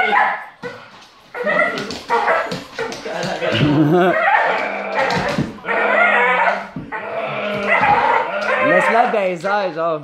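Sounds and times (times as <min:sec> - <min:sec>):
dog vocalising: 0:00.0 - 0:09.2.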